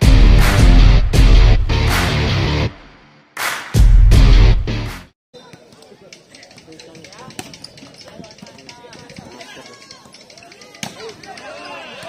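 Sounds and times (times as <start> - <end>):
people talking and calling out: 5.3 - 12.0.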